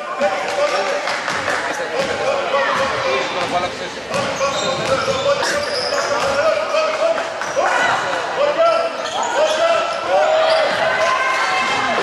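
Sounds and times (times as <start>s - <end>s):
voices calling out: 4.5s - 6.1s.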